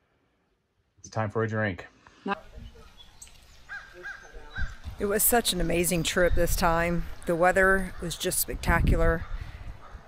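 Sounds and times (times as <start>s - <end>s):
bird calling: 2.4s - 8.4s.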